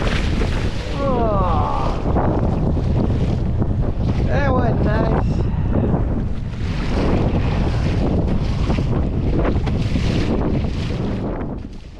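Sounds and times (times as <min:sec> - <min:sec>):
water slapping against hull: 0:00.0 - 0:11.9
wind buffeting microphone: 0:00.0 - 0:11.9.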